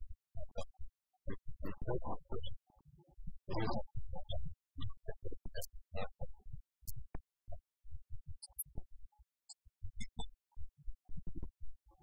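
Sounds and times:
man's voice in degraded audio: 1.6 - 2.5, 3.5 - 3.8.

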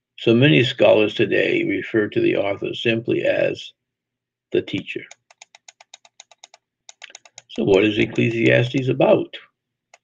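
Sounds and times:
computer clicks: 4.7 - 8.6.

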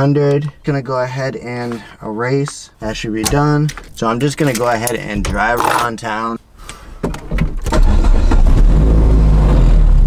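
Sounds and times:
car engine starting up: 7.2 - 10.0.

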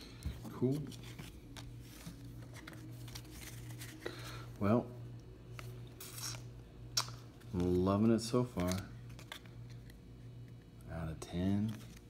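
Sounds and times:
cards rustling: 0.0 - 4.5, 5.4 - 10.7, 11.3 - 12.0.

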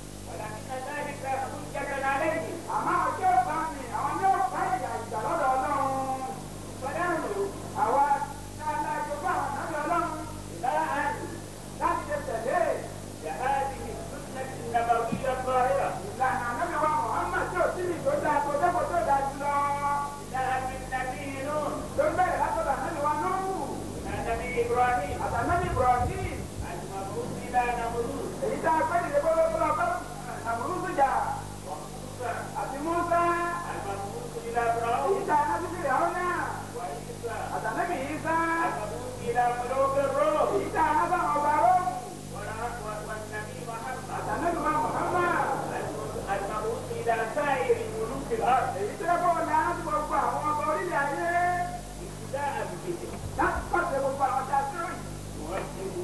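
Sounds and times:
low electrical hum: 0.0 - 56.0
person speaking: 0.3 - 56.0.

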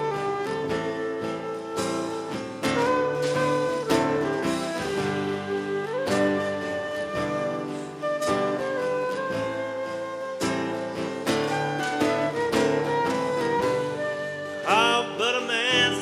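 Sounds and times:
acoustic guitar: 0.0 - 16.0
drums: 0.0 - 16.0
flute melody: 0.0 - 16.0.

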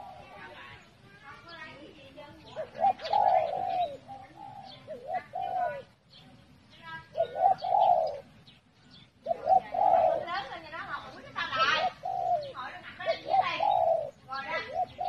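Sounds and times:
dove cooing: 0.0 - 0.9, 1.8 - 6.1, 7.0 - 15.0
high-pitched bird calls: 0.0 - 15.0.

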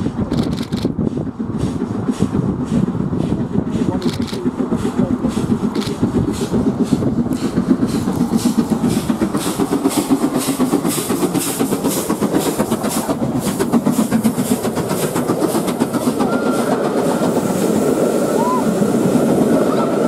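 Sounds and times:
train wheels clattering on rail joints: 0.0 - 18.2
steam locomotive exhaust beat: 0.0 - 20.0.

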